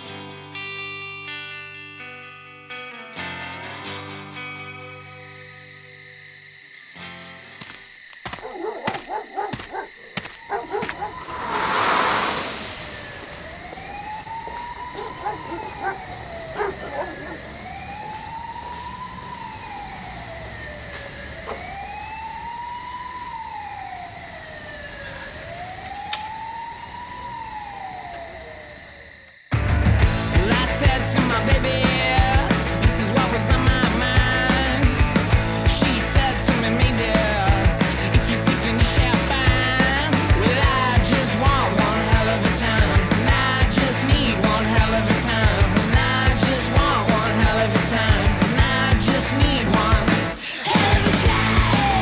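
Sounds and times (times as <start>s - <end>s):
siren wailing: 8.4s - 29.3s, 50.9s - 52.0s
loud rush of noise: 11.1s - 13.8s.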